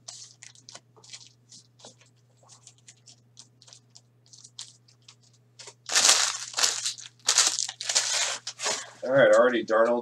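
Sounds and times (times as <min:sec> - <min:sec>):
foil wrapper crinkling: 0:00.0 - 0:08.9.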